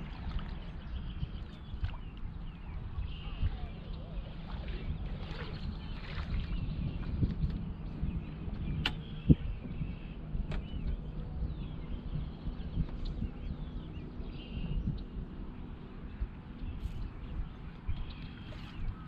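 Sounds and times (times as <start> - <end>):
waves lapping at boat hull: 0.0 - 11.2, 16.6 - 19.0
birds chirping: 0.0 - 19.0
wind on microphone: 0.0 - 19.0.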